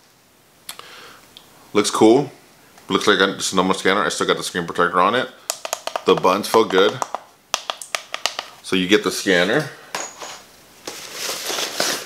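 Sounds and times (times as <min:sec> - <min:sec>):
cables rustling and crinkling: 0:10.3 - 0:12.0.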